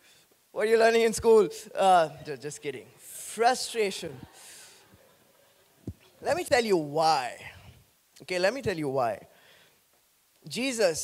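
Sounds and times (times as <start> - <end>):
man speaking into a microphone: 0.5 - 4.7, 6.2 - 9.3, 10.4 - 11.0
breathy hiss: 4.1 - 6.2, 9.2 - 9.9.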